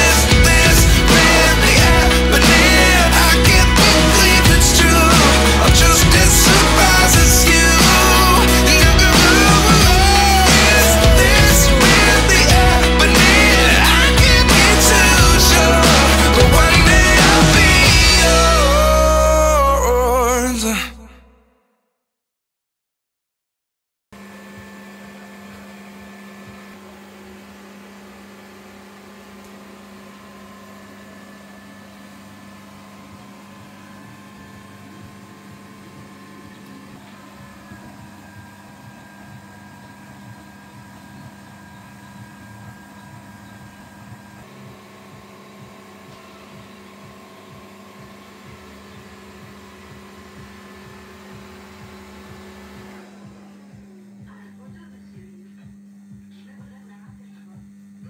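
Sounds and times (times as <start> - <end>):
traffic light ballast buzzing hum: 0.0 - 20.7, 24.2 - 58.0.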